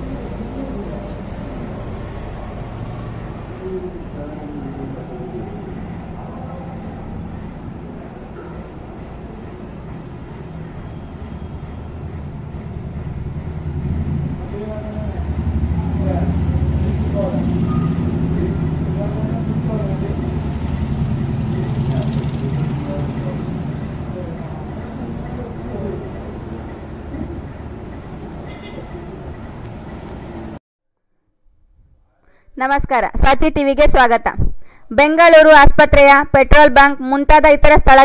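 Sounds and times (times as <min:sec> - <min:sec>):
vehicle engine rumbling: 0:00.0 - 0:30.6.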